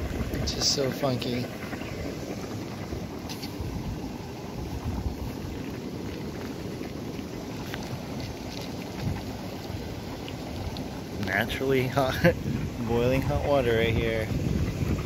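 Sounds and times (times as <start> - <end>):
boiling mud pots rumbling: 0.0 - 15.0
wind on microphone: 0.0 - 15.0.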